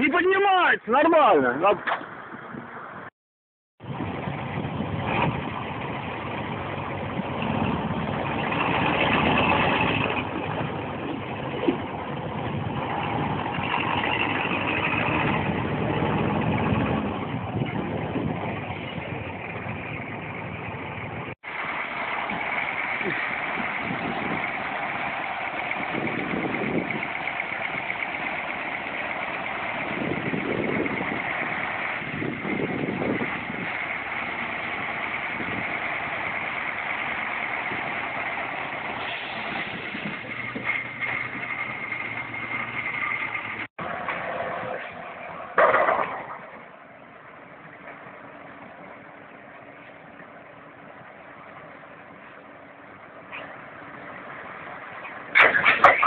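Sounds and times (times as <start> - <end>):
dump truck engines running: 3.8 - 56.0.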